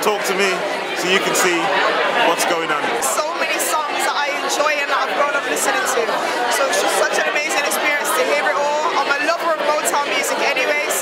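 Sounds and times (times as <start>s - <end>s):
crowd chatter: 0.0s - 11.0s
woman talking: 3.1s - 11.0s.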